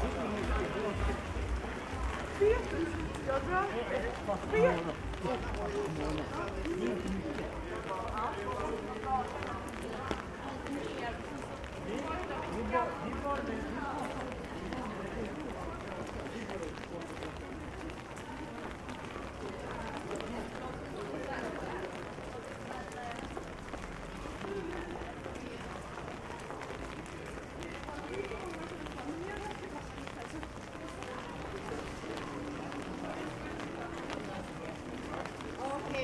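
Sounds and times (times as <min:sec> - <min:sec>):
footsteps on wet paving: 0:00.0 - 0:36.0
people talking: 0:00.0 - 0:36.0.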